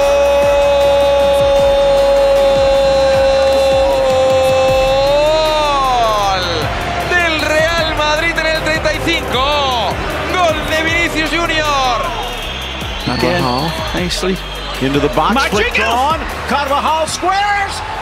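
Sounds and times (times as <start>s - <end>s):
excited shouting: 0.0s - 12.4s
background music: 0.0s - 18.0s
commentator shouting goal: 13.1s - 17.9s.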